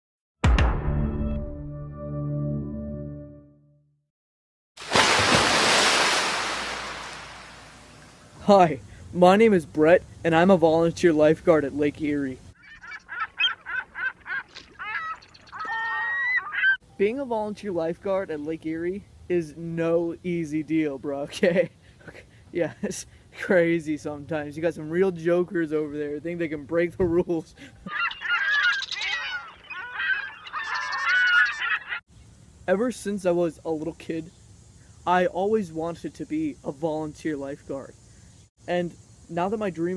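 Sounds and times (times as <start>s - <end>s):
flock of birds calling: 12.6s - 16.8s, 27.9s - 32.0s.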